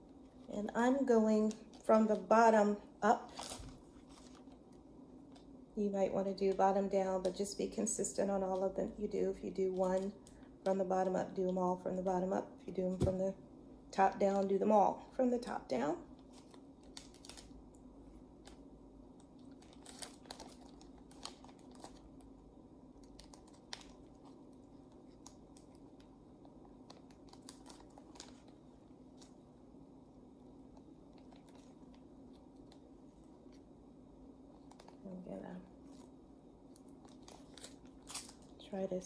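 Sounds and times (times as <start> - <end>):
low steady hum: 0.0 - 39.0
thin plastic crinkling and clicks: 1.3 - 2.3, 9.7 - 10.6, 16.1 - 29.5, 30.7 - 33.7, 34.5 - 35.2, 35.8 - 38.6.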